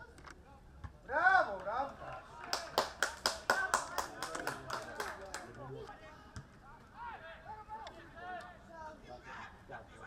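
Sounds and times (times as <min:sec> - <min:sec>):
hand clapping: 0:02.5 - 0:05.5.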